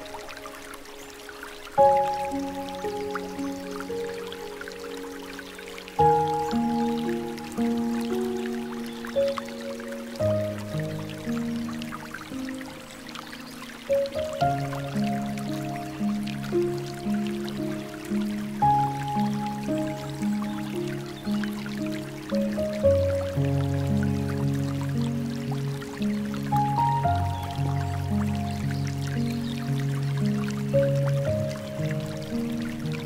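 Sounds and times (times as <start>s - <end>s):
gentle piano music: 0.0s - 33.0s
water trickling and dripping: 0.0s - 33.0s.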